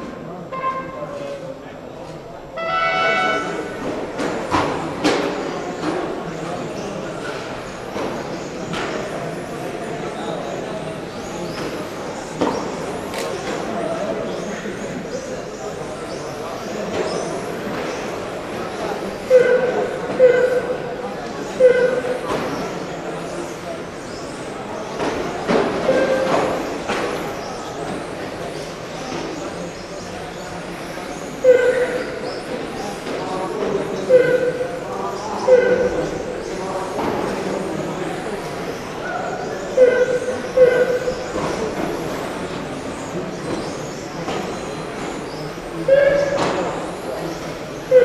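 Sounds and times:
hall noise: 0:02.3 - 0:05.0, 0:30.5 - 0:48.0.

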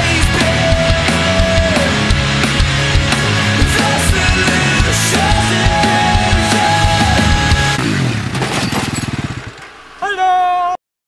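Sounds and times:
quad engine revs falling to idle: 0:00.0 - 0:09.8.

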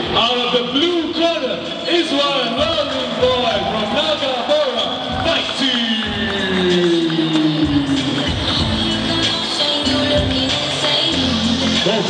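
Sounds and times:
man announcing with drawn-out call: 0:00.1 - 0:07.8.

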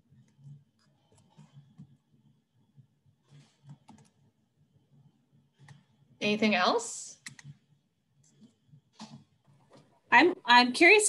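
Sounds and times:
computer mouse and keyboard clicks: 0:03.3 - 0:04.2, 0:05.6 - 0:05.9, 0:07.2 - 0:07.6.

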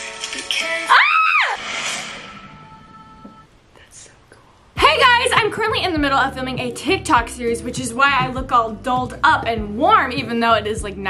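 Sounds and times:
pop music: 0:00.0 - 0:02.0, 0:04.8 - 0:11.0
girl's excited squeal: 0:00.9 - 0:01.6.

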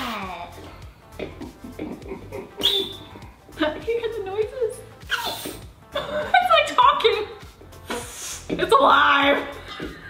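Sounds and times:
whistling gas hiss: 0:02.6 - 0:03.1, 0:05.1 - 0:05.6, 0:07.9 - 0:08.5.

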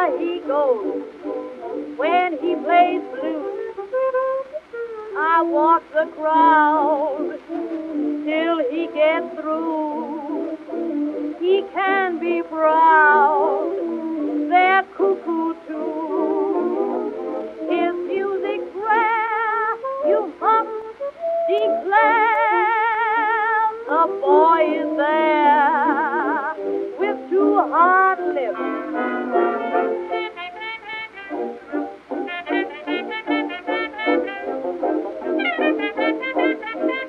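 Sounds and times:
jazz dance band: 0:00.0 - 0:37.0
horn solo with vibrato: 0:23.9 - 0:37.0.

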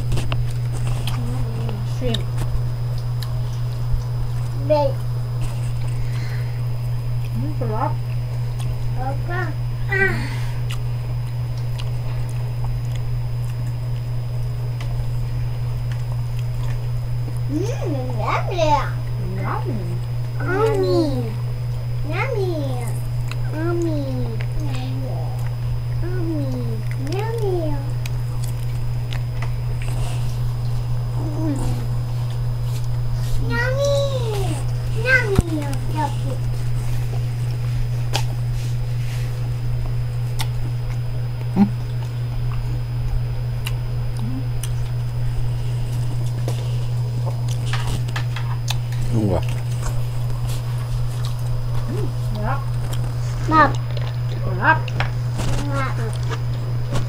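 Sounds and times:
steady low hum: 0:00.0 - 0:57.0
person humming: 0:09.9 - 0:10.6, 0:31.2 - 0:31.9, 0:41.5 - 0:41.8, 0:44.2 - 0:44.6
young child vocalizing: 0:09.9 - 0:10.6.

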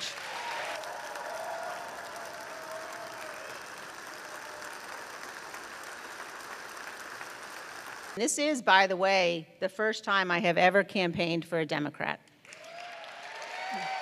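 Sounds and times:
audience applauding: 0:00.0 - 0:08.2, 0:12.5 - 0:14.0.

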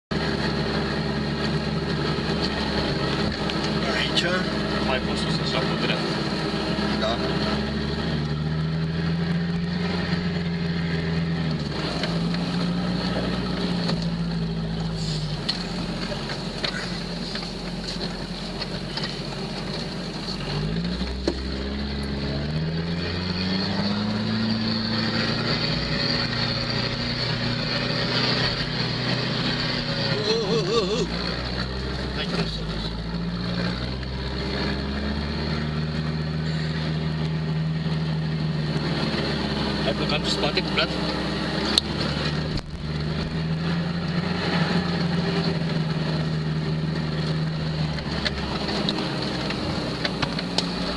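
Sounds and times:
off-road vehicle engine running: 0:00.0 - 0:50.9.

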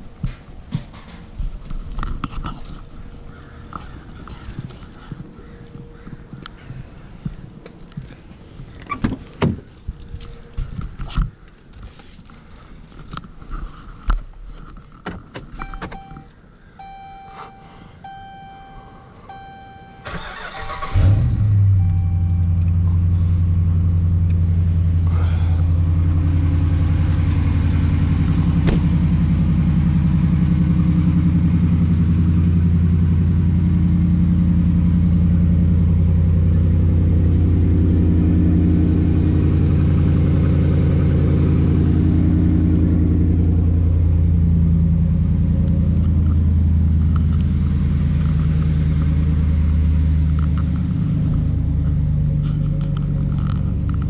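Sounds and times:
truck engine starting and idling: 0:15.3 - 0:54.0.

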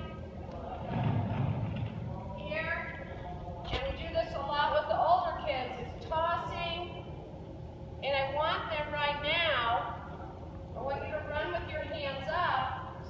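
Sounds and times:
woman speaking: 0:10.8 - 0:12.8.

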